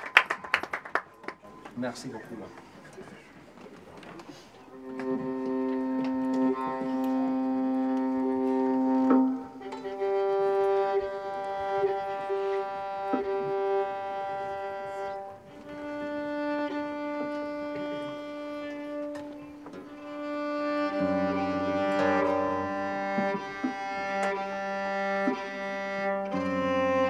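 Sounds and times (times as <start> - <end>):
bowed string instrument notes: 4.6 - 27.0.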